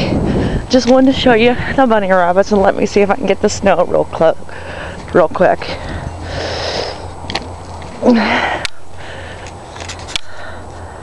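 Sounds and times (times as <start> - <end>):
person sniffing and breathing: 5.8 - 7.1, 8.0 - 11.0.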